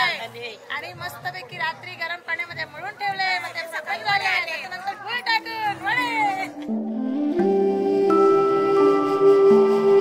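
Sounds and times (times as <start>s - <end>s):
soft music of held notes: 6.0s - 10.0s.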